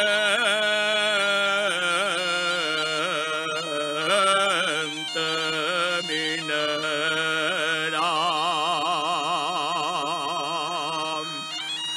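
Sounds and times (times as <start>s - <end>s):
bagpipe drone: 0.0s - 11.9s
man singing with vibrato: 0.0s - 11.9s.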